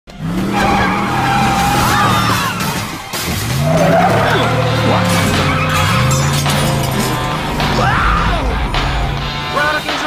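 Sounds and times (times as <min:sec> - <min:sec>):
car engine running: 0:00.1 - 0:09.6
tyres squealing: 0:00.4 - 0:08.5.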